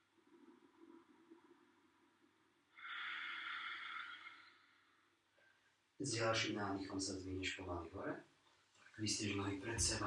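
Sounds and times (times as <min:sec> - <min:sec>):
person breathing out: 0:02.8 - 0:04.8.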